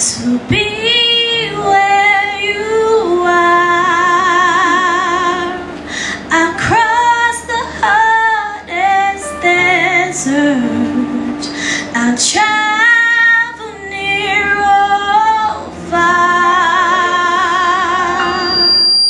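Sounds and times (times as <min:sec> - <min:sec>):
woman singing into microphone: 0:00.0 - 0:18.6.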